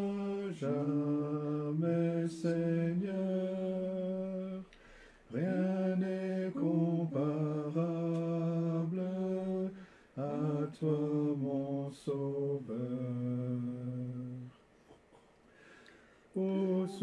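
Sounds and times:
person singing a hymn unaccompanied: 0.0s - 14.7s, 16.3s - 17.0s.

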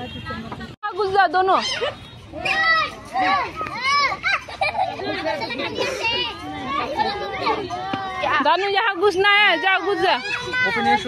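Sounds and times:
children squealing and shouting: 1.4s - 8.4s, 9.0s - 11.0s.

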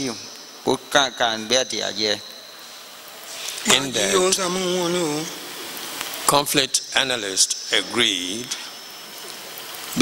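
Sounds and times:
thin high whine: 0.0s - 10.0s
man speaking into a microphone: 6.3s - 8.7s.

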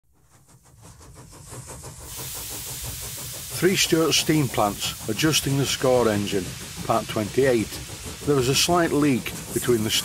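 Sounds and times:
model steam engine chuffing: 0.1s - 10.0s.

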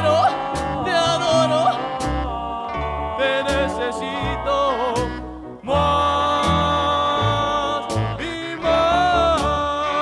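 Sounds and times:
accordion: 0.0s - 10.0s
guitar: 0.0s - 10.0s
upright bass notes: 0.0s - 10.0s.

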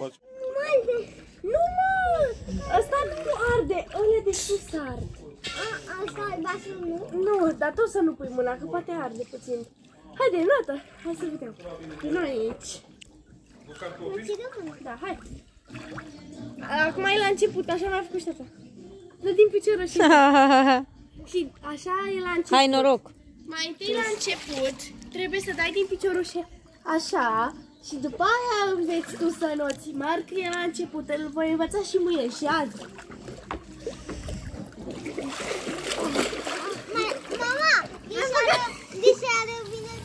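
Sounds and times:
water sloshing in a pool: 0.0s - 40.0s.

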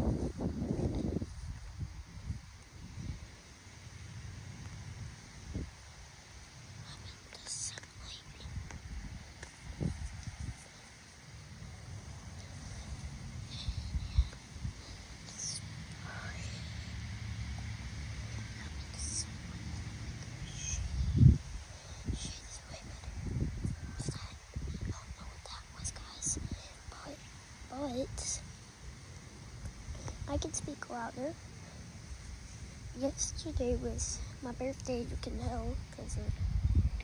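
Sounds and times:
wind rumble on microphone: 0.0s - 28.5s, 32.2s - 37.0s
child whispering: 6.8s - 8.6s, 12.4s - 16.9s, 18.4s - 19.8s, 20.4s - 21.2s, 21.8s - 28.4s, 29.9s - 31.4s, 33.0s - 36.3s.

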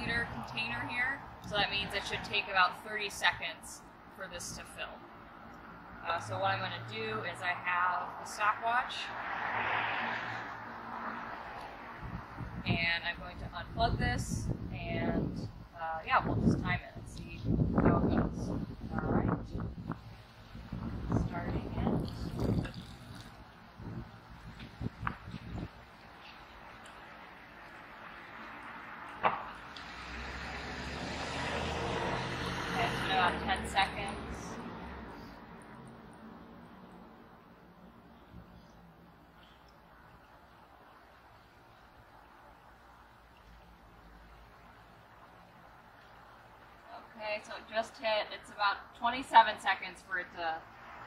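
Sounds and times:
road vehicle passing: 0.0s - 51.0s
water stream pouring into cup: 22.0s - 23.4s.

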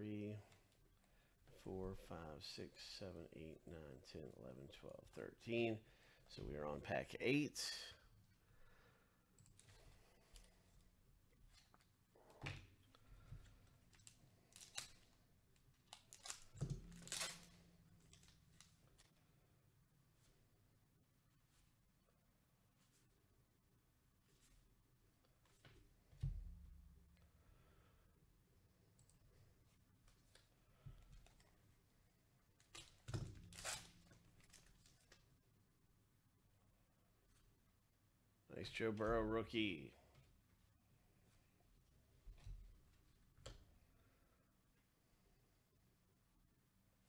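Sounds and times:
plastic wrapper crinkling: 13.9s - 19.1s.

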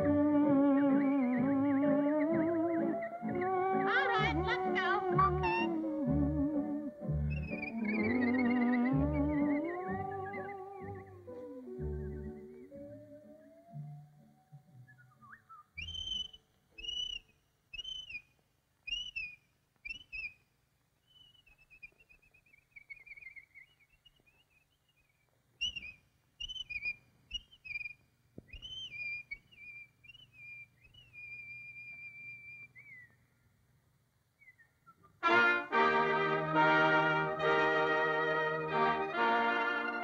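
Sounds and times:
whistled bird calls: 0.0s - 14.0s, 14.8s - 18.3s, 18.9s - 20.4s, 21.0s - 33.2s, 34.4s - 35.2s.

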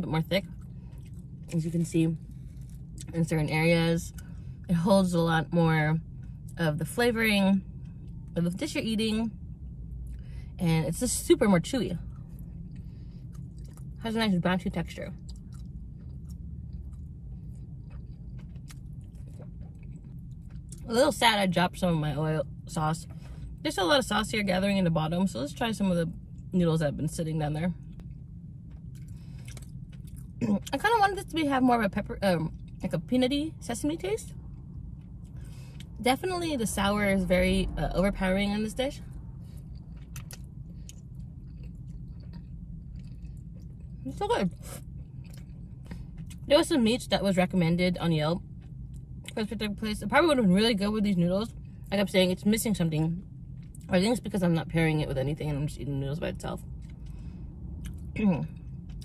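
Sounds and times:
low steady hum: 0.0s - 59.0s
person chewing noodles: 12.7s - 13.9s, 15.3s - 20.8s, 28.9s - 30.3s, 39.6s - 43.9s, 45.0s - 45.6s.

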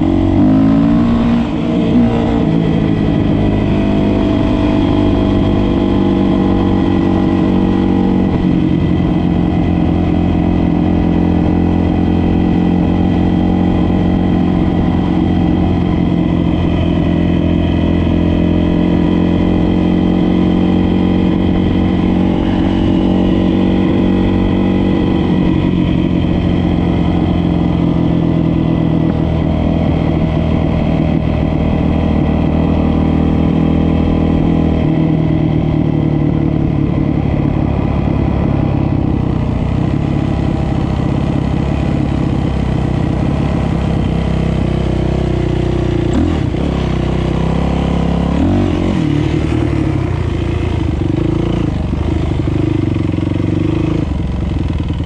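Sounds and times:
dirt bike engine running: 0.0s - 55.0s.

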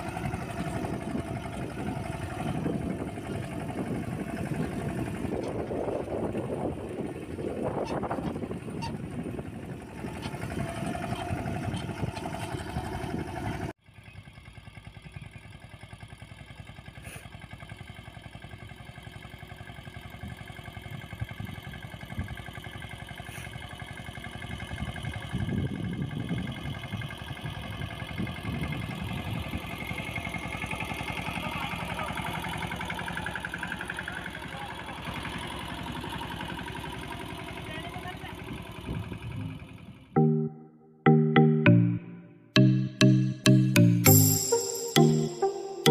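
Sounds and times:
tractor diesel engine running: 0.0s - 45.9s.

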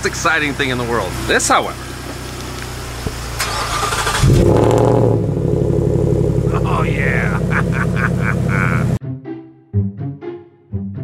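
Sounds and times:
engine revving then fast idling: 2.8s - 9.0s
starter cranking: 3.4s - 4.9s.

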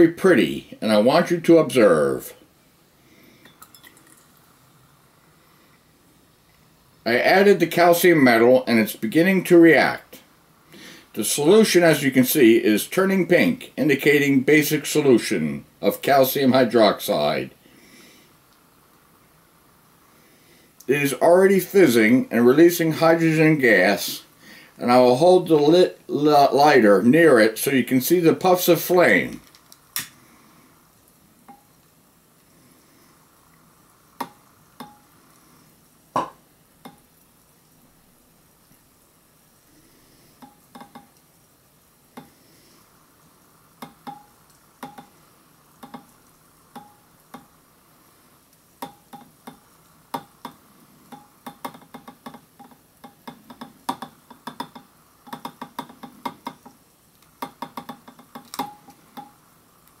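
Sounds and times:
metal fizzing in water: 3.4s - 4.5s
sharp hydrogen pops: 36.1s - 37.2s, 43.8s - 45.2s.

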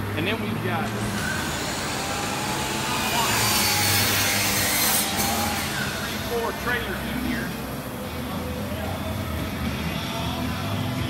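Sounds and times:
power saw cutting wood: 0.9s - 7.2s.

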